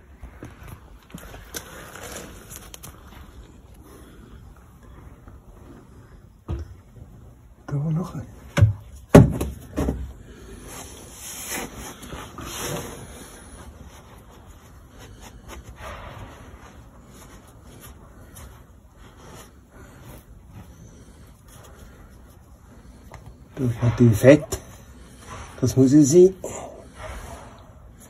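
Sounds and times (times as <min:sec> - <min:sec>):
sharp knocks: 0:08.6 - 0:10.0.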